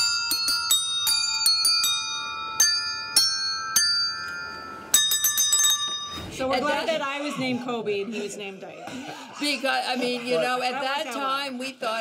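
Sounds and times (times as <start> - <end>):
desk bells ringing a tune: 0.0 - 6.8.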